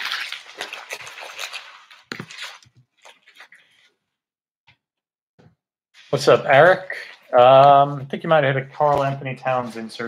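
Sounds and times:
plastic wrappers crumpling: 0.0 - 3.9.

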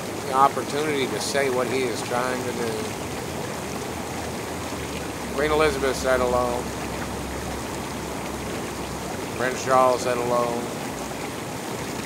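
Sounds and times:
bubbling churning water jets: 0.0 - 12.0.

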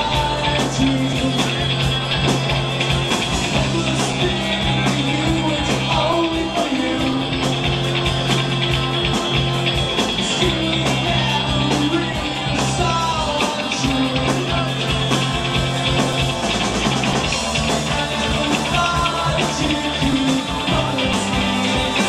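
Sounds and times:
bass guitar: 0.0 - 22.0
drum kit with cymbals: 0.0 - 22.0
electric guitar: 0.0 - 22.0.

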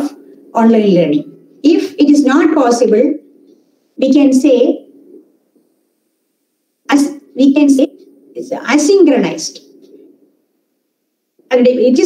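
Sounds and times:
woman speaking: 0.0 - 3.3, 4.0 - 4.9, 6.9 - 9.7, 11.5 - 12.0.

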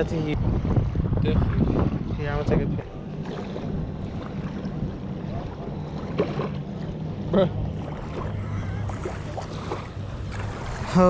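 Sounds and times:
motorboat engine drone: 0.0 - 11.0.

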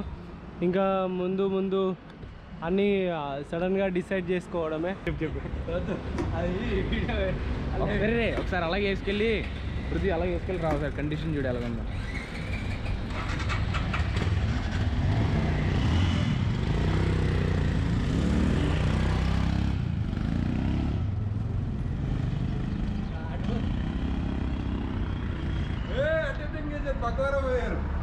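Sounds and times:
motorcycle engine accelerating: 12.8 - 25.9.

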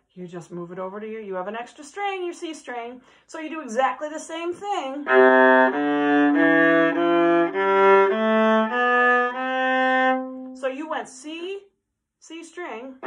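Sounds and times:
viola bowed ascending scale: 5.0 - 10.6.

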